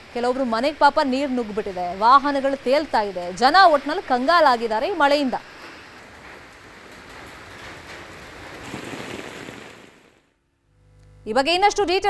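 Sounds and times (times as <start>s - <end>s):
rain on wet paving: 0.0s - 10.3s.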